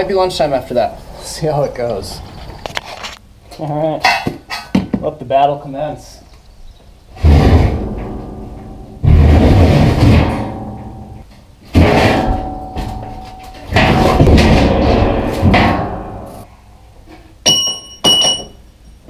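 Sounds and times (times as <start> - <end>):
steel plate clanging: 7.2 - 16.5, 17.4 - 18.6
steel plate scraping on concrete: 7.2 - 16.5.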